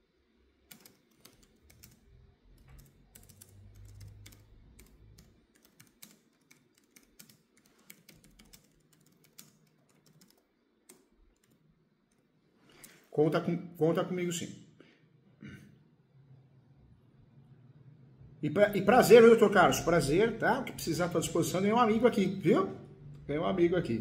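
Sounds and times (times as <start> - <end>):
typing on computer keyboard: 0.7 - 12.2.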